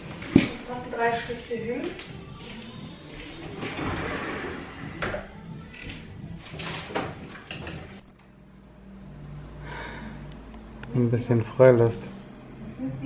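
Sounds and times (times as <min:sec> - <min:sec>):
objects scraping and knocking: 0:03.2 - 0:05.3.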